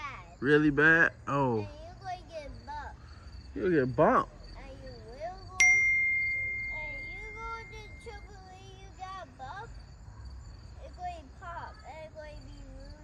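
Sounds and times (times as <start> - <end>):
crickets chirping: 0.0 - 13.0
metallic ding ringing: 5.6 - 8.2.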